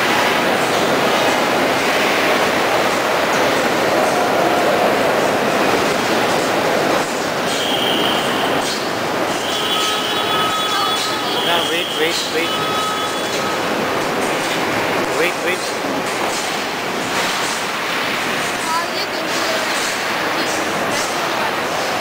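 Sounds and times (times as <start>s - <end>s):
loud industrial din: 0.0s - 22.0s.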